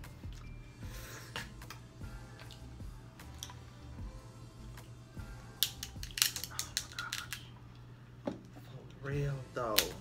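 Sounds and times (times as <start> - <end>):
shellfish shell cracking: 5.6 - 7.5.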